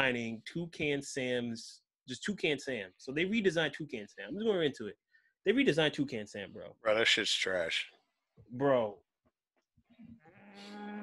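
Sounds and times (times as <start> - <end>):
man speaking: 0.0 - 9.0.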